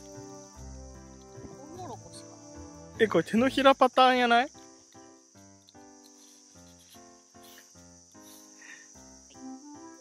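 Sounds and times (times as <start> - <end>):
faint background music chords: 0.0 - 10.0
insects chirring: 0.0 - 10.0.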